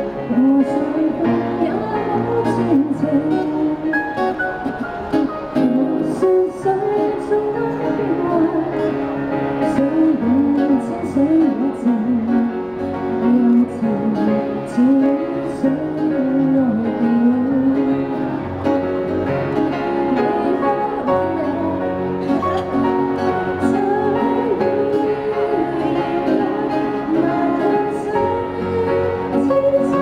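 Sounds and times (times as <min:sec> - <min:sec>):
woman singing into microphone: 0:00.0 - 0:04.8, 0:05.5 - 0:18.6, 0:19.9 - 0:30.0
acoustic guitar: 0:00.0 - 0:30.0.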